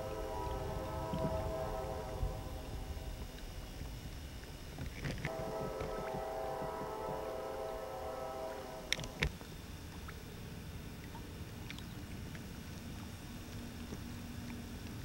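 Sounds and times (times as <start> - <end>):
droning multi-tone hum: 0.0 - 15.0
wind rumbling on microphone: 0.0 - 15.0.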